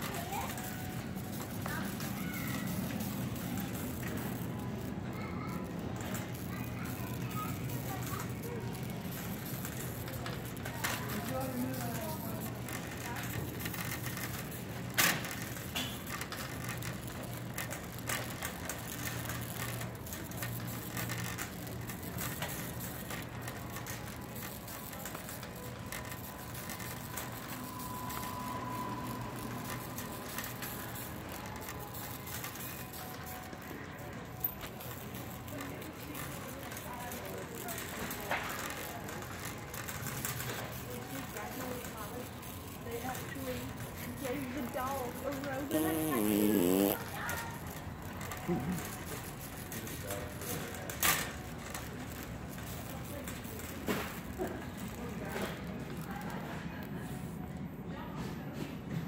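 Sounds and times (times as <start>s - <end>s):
shopping cart rattling: 0.0s - 46.0s, 46.7s - 56.7s
shoppers' voices in background: 0.0s - 59.0s.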